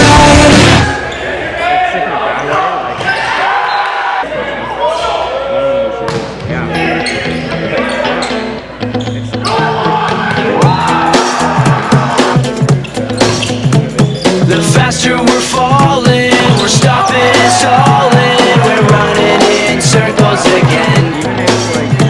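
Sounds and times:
rock music: 0.0 - 0.9, 6.9 - 22.0
players calling out: 6.6 - 22.0
sneakers squeaking on court: 6.9 - 9.7, 12.6 - 14.5, 16.3 - 17.0.

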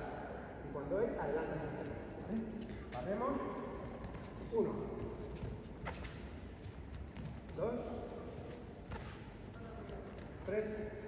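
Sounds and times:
bare feet shuffling on mats: 2.6 - 11.0.

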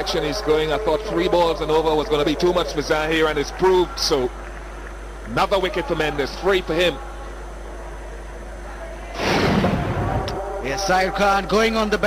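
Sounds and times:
loud whoosh: 9.2 - 10.4.

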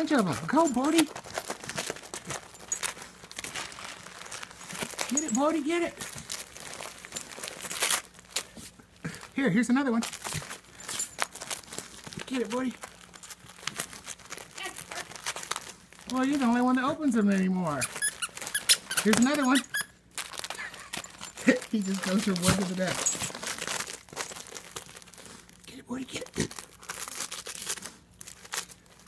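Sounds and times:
wrapping paper crinkling and tearing: 0.0 - 29.0.

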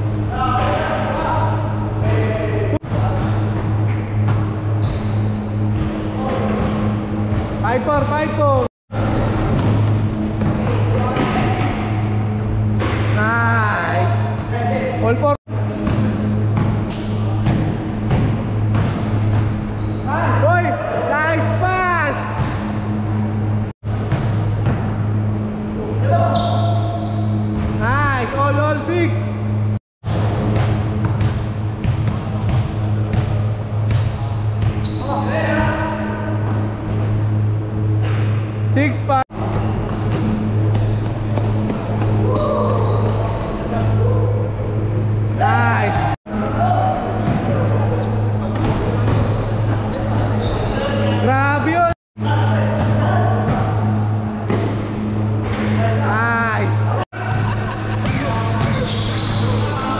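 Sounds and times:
sneakers squeaking: 0.0 - 1.9, 2.8 - 8.4, 9.2 - 14.6, 15.7 - 27.9, 31.0 - 46.2, 47.0 - 51.9, 52.6 - 56.1, 56.8 - 59.9
basketball bouncing on court: 9.4 - 13.2, 15.7 - 19.9, 23.9 - 25.2, 30.1 - 35.0, 39.3 - 43.6, 47.2 - 50.8, 57.2 - 59.8.

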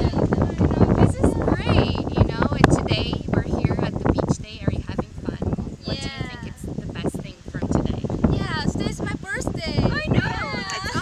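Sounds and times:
women talking: 0.0 - 11.0.

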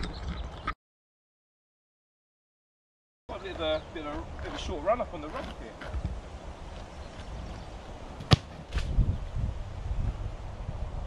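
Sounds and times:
football kicked with a thump: 8.2 - 9.0.

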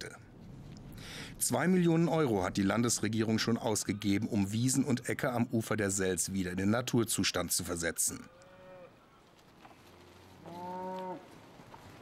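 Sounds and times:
cow mooing: 8.3 - 9.0, 10.4 - 11.3.

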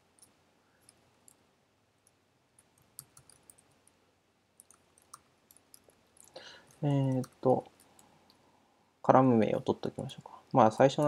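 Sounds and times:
computer keyboard clicks: 2.0 - 3.7, 4.6 - 8.1.

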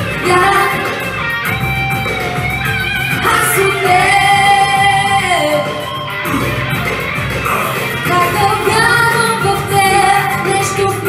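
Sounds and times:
girl singing into microphone: 0.0 - 1.1, 3.2 - 6.5, 8.0 - 11.0
pop backing track: 0.0 - 11.0.

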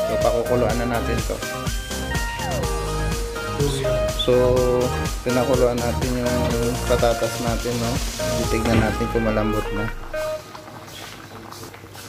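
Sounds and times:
water boiling in a pan: 5.3 - 12.0.

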